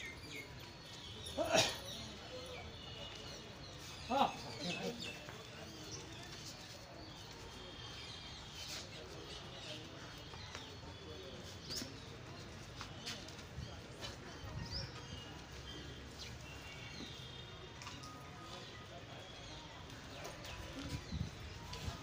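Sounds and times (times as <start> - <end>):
low outdoor background: 0.0 - 22.0.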